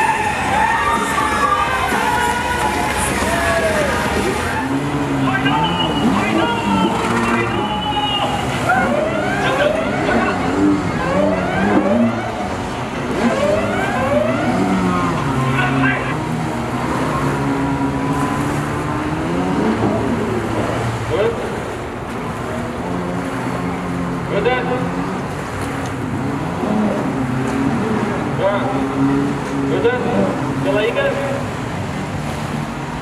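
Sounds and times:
jet ski engine revving: 0.0s - 33.0s.

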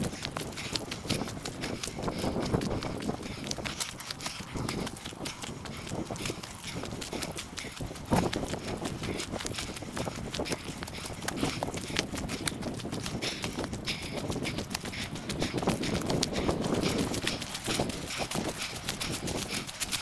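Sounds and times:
footsteps on leafy dirt trail: 0.0s - 20.0s.

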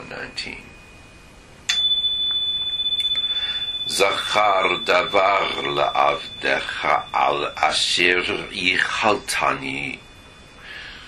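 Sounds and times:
high-pitched electronic tone: 0.0s - 10.6s.

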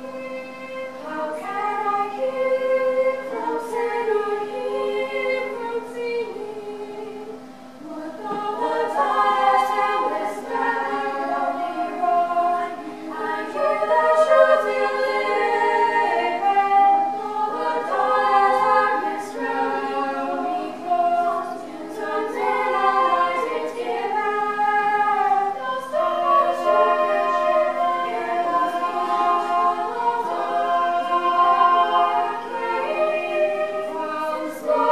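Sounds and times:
girls' choir singing unaccompanied: 0.0s - 34.9s.

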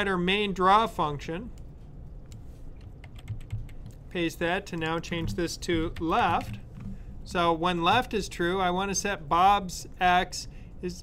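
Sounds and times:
computer keyboard clicking: 2.8s - 4.0s, 5.8s - 6.9s.

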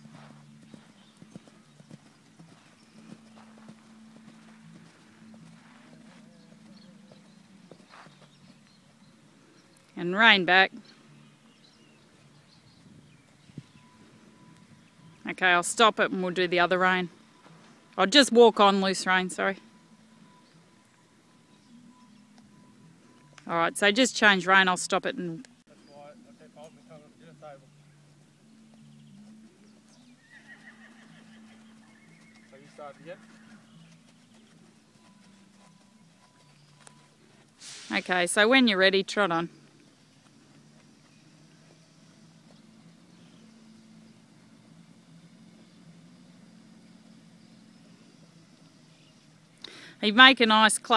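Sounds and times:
distant bird chirps: 0.0s - 50.9s
horse whinnying: 30.2s - 32.0s.

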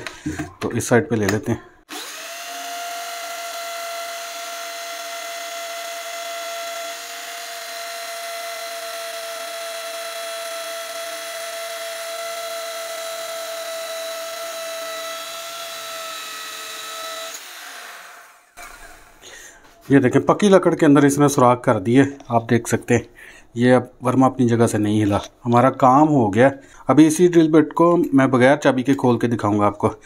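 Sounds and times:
electric drill boring into wood: 1.9s - 19.3s.

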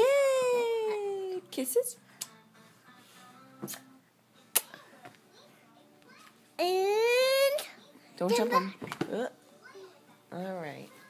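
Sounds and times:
toddler kiss lip smack: 3.6s - 3.9s, 4.5s - 4.8s.

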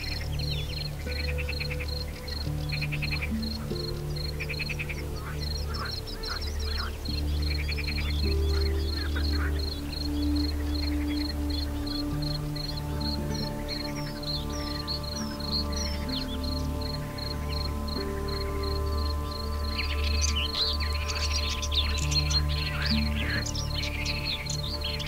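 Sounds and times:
bird chirps: 0.0s - 25.0s
calm ambient music: 0.0s - 25.0s
insect chirping: 0.0s - 25.0s
raspy animal calls: 0.0s - 25.0s.

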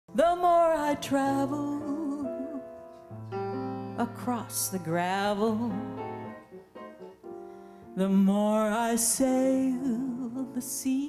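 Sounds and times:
jazz piano chords: 0.1s - 11.0s
small jazz band: 0.4s - 11.0s.

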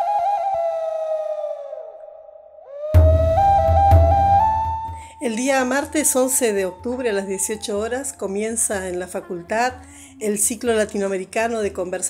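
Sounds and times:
flute-like wind instrument melody: 0.0s - 8.0s
deep bass hit: 3.0s - 5.1s.

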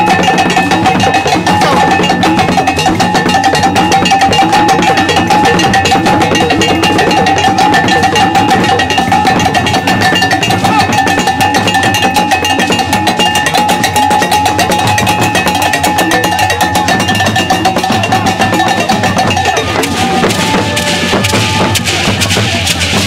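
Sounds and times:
steady ringing tone: 0.0s - 22.0s
drums: 0.0s - 23.0s.

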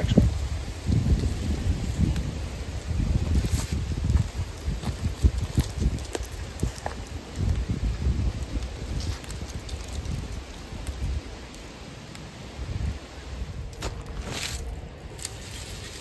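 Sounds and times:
wind buffeting microphone: 0.0s - 16.0s
faint crackles and ticks: 3.3s - 16.0s.

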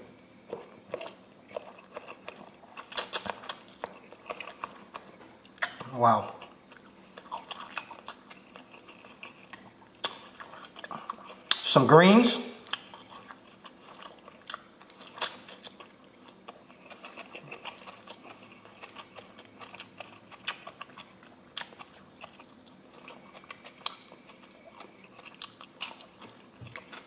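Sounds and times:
person chewing noodles: 0.4s - 11.6s, 12.6s - 27.0s.

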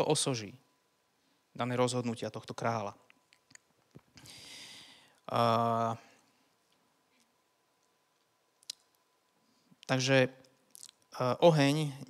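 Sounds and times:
man speaking: 0.0s - 0.6s, 1.6s - 3.0s, 5.3s - 6.1s, 9.9s - 10.4s, 11.2s - 12.0s.

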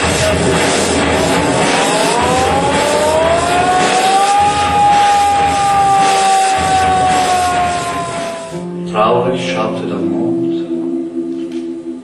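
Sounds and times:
loud engine whining: 0.0s - 8.9s.

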